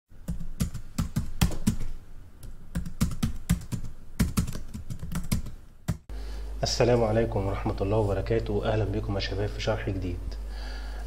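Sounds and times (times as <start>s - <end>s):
keyboard typing: 0.2s - 6.1s.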